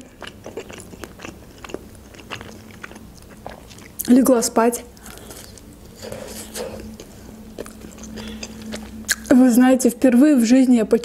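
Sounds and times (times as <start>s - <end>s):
pizza being chewed: 0.0s - 9.4s.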